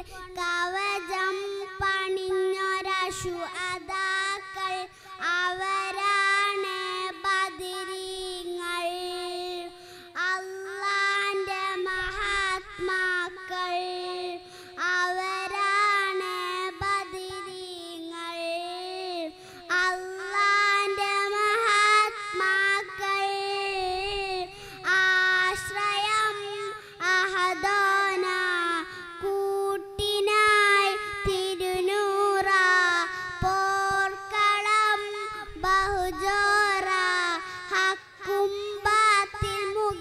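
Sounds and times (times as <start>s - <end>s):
girl singing into a microphone: 0.0s - 40.0s.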